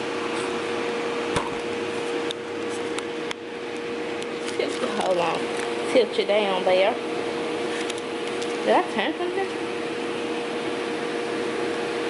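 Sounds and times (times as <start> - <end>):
hair dryer blower humming: 0.0 - 12.0.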